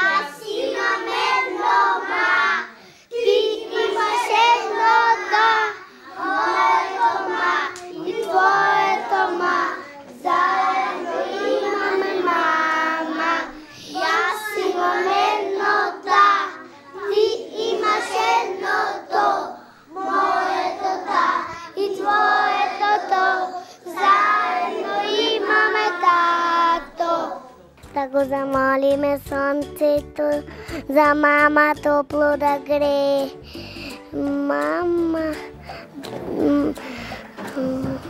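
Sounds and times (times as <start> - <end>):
children singing together: 0.0 - 27.6.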